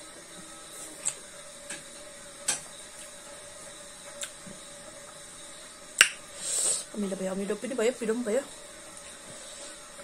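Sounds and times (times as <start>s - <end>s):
high hiss: 3.5s - 7.0s.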